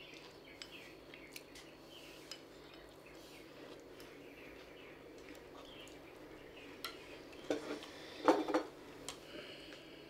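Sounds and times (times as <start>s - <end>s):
chopsticks clicking against bowls: 0.1s - 1.7s.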